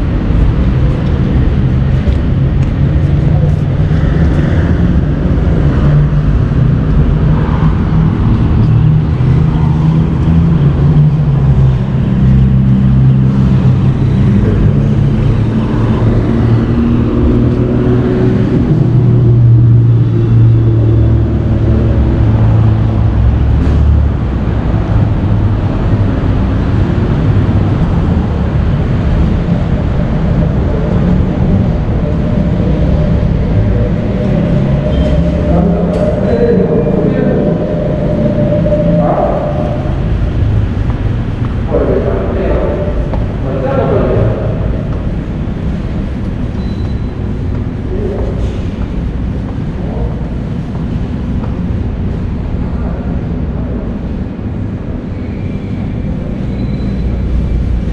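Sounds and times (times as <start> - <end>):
passing and idling car engines: 0.0 - 57.9.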